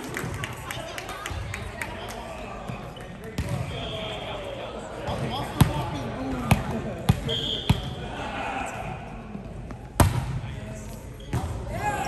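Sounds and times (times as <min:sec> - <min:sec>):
players' voices murmuring: 0:00.0 - 0:12.0.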